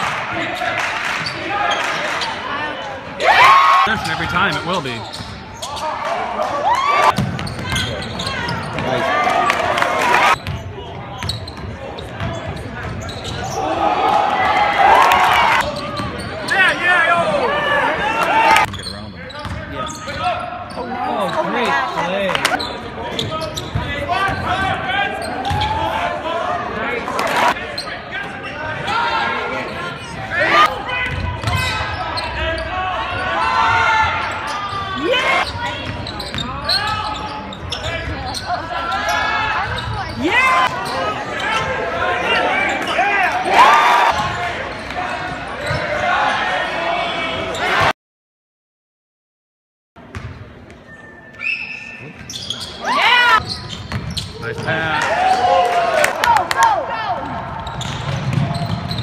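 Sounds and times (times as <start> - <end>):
voices of players and spectators: 0.0 - 47.9, 50.0 - 59.0.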